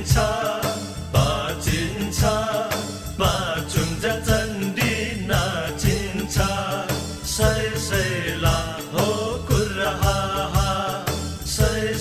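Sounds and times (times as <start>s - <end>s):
drum beating: 0.0s - 12.0s
voices chanting a melody: 0.0s - 12.0s.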